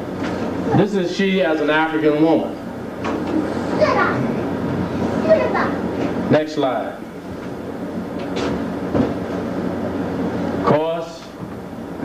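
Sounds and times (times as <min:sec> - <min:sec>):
slide projector running: 0:00.0 - 0:12.0.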